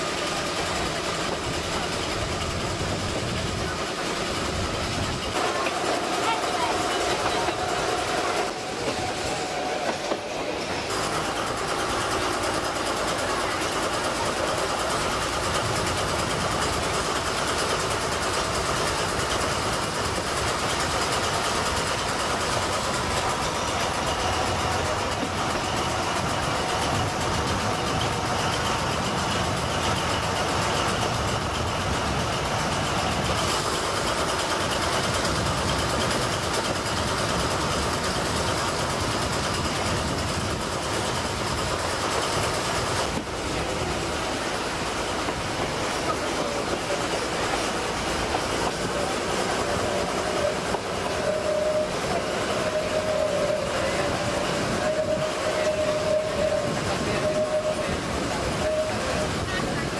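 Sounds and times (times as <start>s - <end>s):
diesel locomotive running: 0.0s - 59.9s
train wheels clattering on rails: 0.0s - 59.9s.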